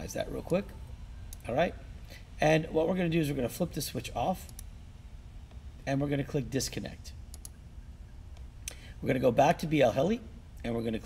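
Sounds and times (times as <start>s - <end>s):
low steady background hum: 0.0s - 11.0s
computer mouse clicks: 7.3s - 7.6s.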